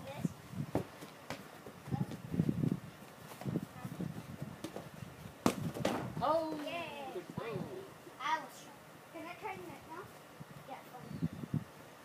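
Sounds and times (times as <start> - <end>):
sharp knocks: 5.4 - 6.2.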